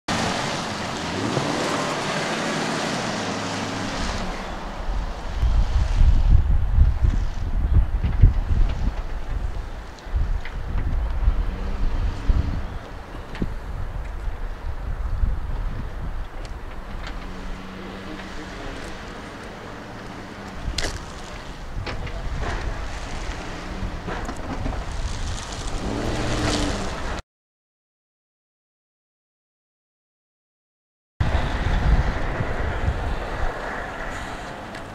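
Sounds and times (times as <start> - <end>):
truck engine revving: 0.1 - 5.5, 11.0 - 13.0, 16.6 - 27.2
wind buffeting microphone: 1.1 - 27.2, 31.2 - 34.9.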